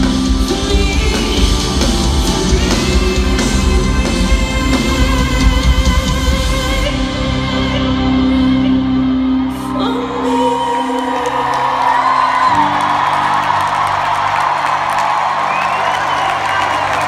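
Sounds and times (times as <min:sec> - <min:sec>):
live band holding chords: 0:00.0 - 0:17.0
crowd cheering and whooping: 0:09.4 - 0:17.0.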